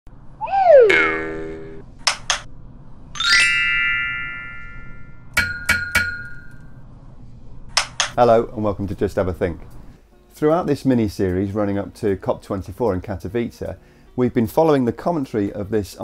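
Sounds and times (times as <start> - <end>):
falling pitched swoop: 0.4 - 1.8.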